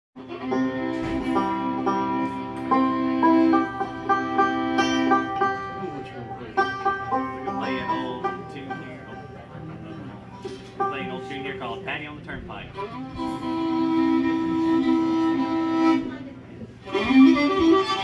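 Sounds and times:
banjo picking: 0.2 - 18.0
fiddle bowing long notes: 0.2 - 18.0.

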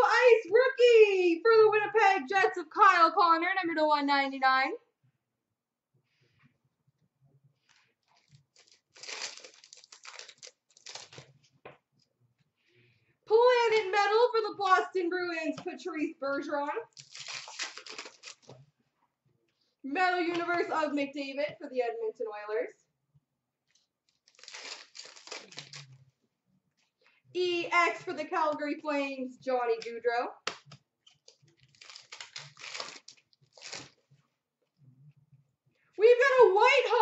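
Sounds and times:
foil wrapper tearing and crinkling: 8.2 - 11.4, 16.9 - 18.5, 24.1 - 25.9, 31.2 - 34.0.

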